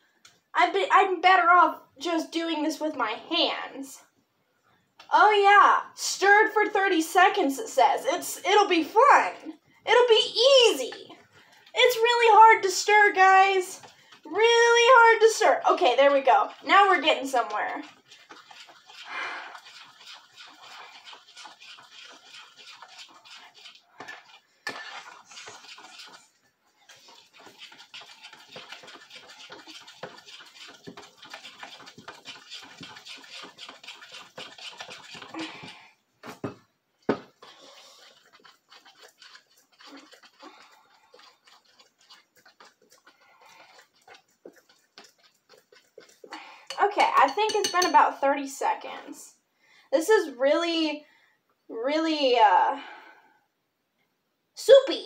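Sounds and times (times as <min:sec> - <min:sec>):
slime squelching by hand: 0:11.8 - 0:35.8, 0:37.3 - 0:48.0.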